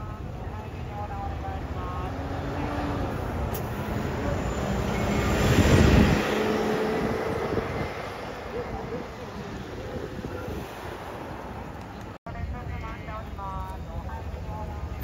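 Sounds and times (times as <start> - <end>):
bus driving past: 1.0 - 12.2.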